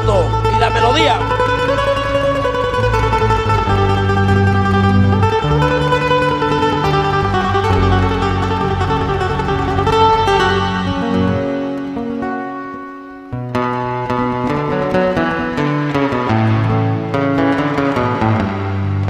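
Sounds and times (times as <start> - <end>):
bass line: 0.0 - 12.6, 13.2 - 19.0
electric guitar playing: 0.0 - 19.0.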